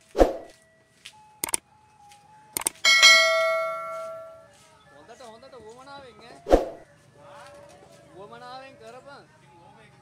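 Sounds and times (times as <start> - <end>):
mouse clicks: 2.6 - 2.8
bright bell chime: 2.8 - 4.6.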